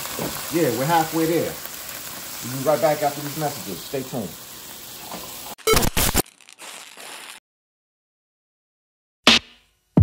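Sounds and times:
chicken sizzling in a pan: 0:00.0 - 0:05.6, 0:06.2 - 0:07.4.

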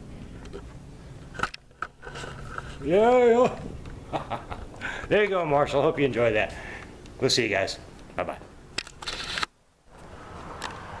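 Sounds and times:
camera handling rustle: 0:08.8 - 0:09.5.

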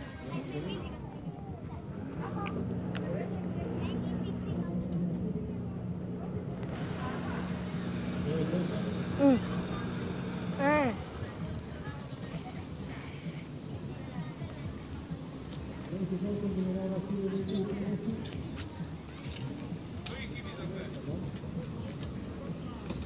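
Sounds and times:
harbour ambience: 0:00.0 - 0:23.0
scattered voices: 0:00.0 - 0:23.0
boat engine humming: 0:01.2 - 0:18.6.

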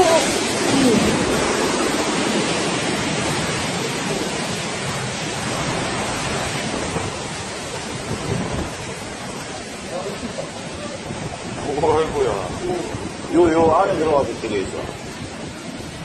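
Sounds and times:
sea waves breaking: 0:00.0 - 0:16.0.

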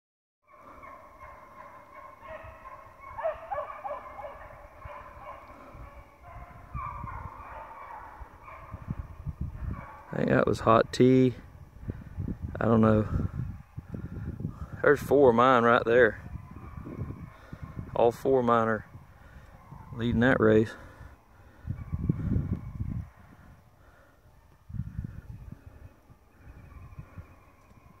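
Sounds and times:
hounds baying: 0:00.5 - 0:10.8, 0:14.8 - 0:28.0
wind buffeting microphone: 0:00.6 - 0:28.0.

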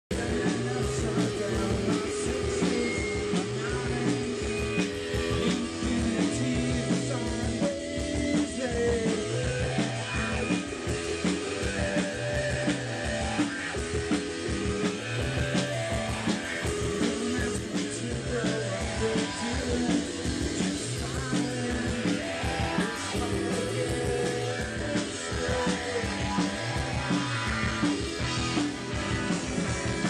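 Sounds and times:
bass guitar: 0:00.1 - 0:30.0
drum kit beat: 0:00.1 - 0:30.0
electric guitars: 0:00.1 - 0:30.0.

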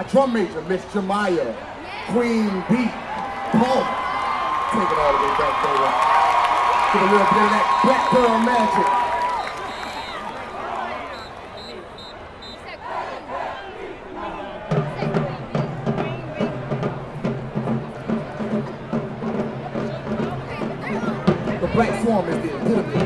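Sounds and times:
stadium crowd cheering: 0:01.5 - 0:23.0
marching band playing: 0:04.7 - 0:12.8, 0:14.7 - 0:23.0
high whistle blasts: 0:07.4 - 0:10.4, 0:11.0 - 0:12.7.

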